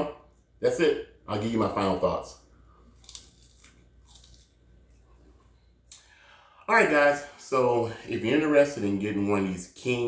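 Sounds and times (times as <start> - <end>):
faint chewing: 2.7 - 6.1
teeth crunching crisp skin: 2.8 - 5.2.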